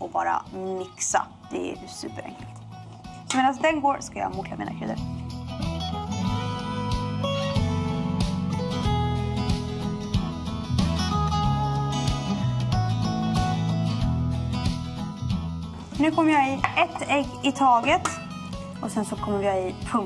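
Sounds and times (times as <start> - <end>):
plucked acoustic guitar music: 5.2 - 18.6.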